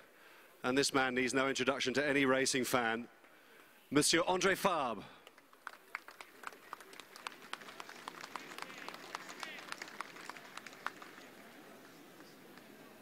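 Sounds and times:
crowd applause: 5.4s - 13.0s.

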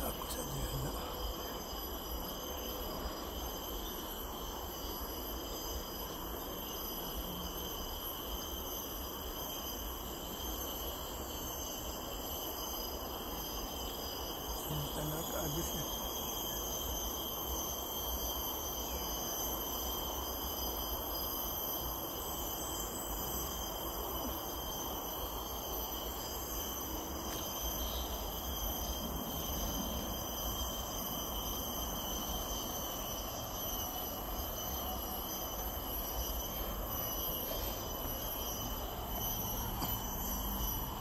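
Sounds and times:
high-pitched insect chorus: 0.0s - 41.0s.

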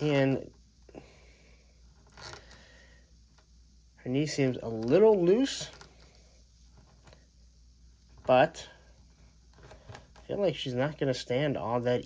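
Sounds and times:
plastic scrape: 1.9s - 2.7s.

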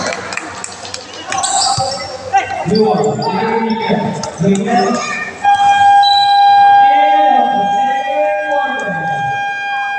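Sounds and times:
voices of players and spectators: 0.0s - 9.9s.

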